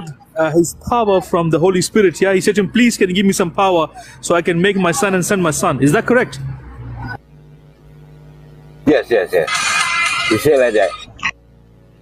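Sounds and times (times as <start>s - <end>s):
buzzy tones: 0.0s - 12.0s
steady electrical hum: 0.0s - 12.0s.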